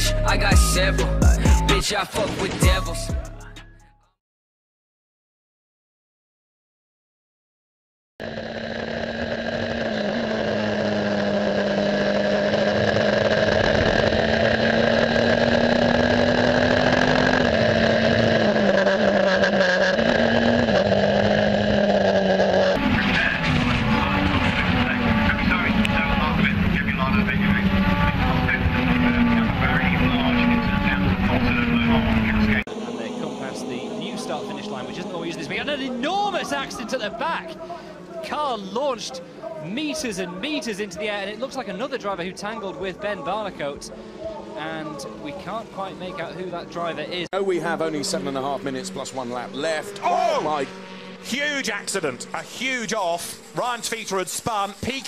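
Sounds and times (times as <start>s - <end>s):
racing car engines at high revs: 8.2s - 55.0s.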